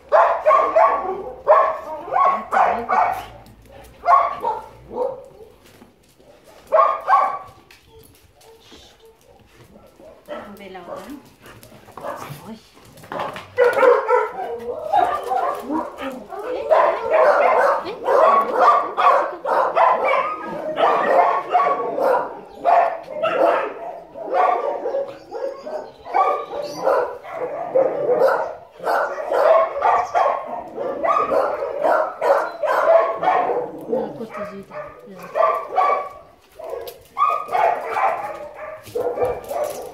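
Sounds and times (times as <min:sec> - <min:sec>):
dogs barking and yipping: 0:00.0 - 0:39.9.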